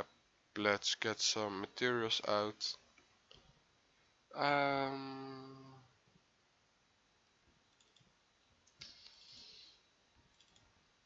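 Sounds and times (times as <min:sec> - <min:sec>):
soft hiss: 0:00.0 - 0:11.0
computer mouse clicks: 0:07.7 - 0:09.2, 0:10.3 - 0:10.7.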